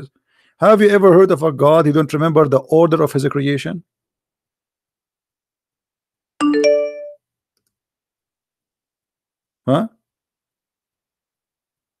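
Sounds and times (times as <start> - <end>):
multi-note chime: 6.4 - 7.2.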